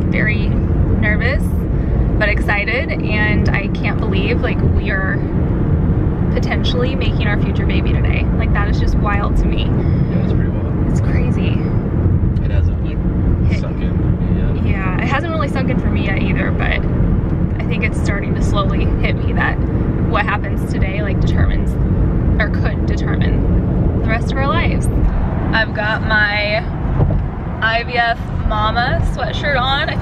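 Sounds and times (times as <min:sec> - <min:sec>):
car road and engine rumble: 0:00.0 - 0:30.0
voices talking: 0:02.2 - 0:05.2, 0:06.4 - 0:11.8, 0:12.4 - 0:16.8, 0:17.6 - 0:21.8, 0:22.4 - 0:26.7, 0:27.6 - 0:30.0.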